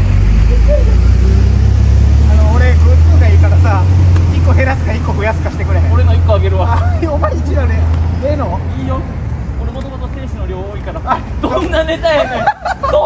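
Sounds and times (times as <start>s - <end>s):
road traffic rumble: 0.0s - 13.0s
men talking: 0.5s - 13.0s.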